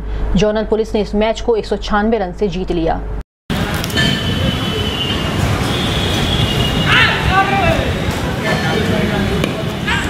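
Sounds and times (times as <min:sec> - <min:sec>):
outdoor rushing noise: 0:03.5 - 0:10.0.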